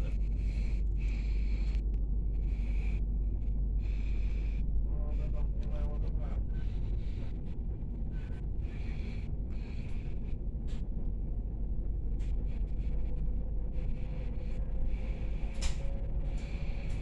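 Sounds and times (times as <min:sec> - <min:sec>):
train wheels rumbling on rails: 0:00.0 - 0:17.0.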